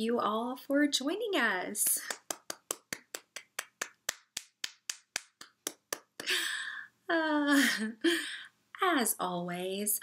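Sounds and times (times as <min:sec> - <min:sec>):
person clapping hands: 0:01.8 - 0:06.4.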